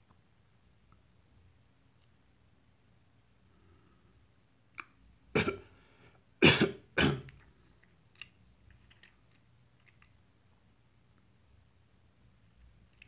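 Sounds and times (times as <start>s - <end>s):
person coughing: 5.4s - 5.7s, 6.4s - 7.3s.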